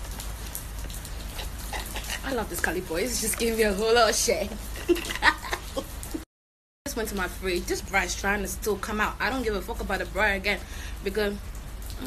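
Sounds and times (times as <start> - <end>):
crackly hiss: 0.0 - 3.9.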